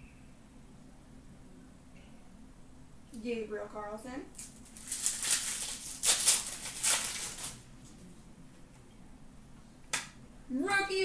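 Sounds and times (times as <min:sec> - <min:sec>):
wrapper tearing and crinkling: 0:04.4 - 0:07.6.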